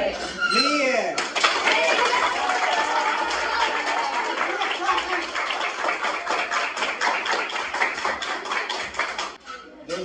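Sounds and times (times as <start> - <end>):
boys clapping hands in rhythm: 1.2 - 9.4.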